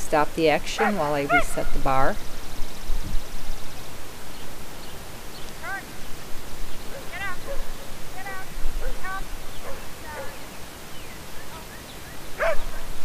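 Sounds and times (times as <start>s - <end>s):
outdoor hiss: 0.0s - 13.0s
dog yipping barks: 0.8s - 1.6s, 6.9s - 10.4s, 12.4s - 12.8s.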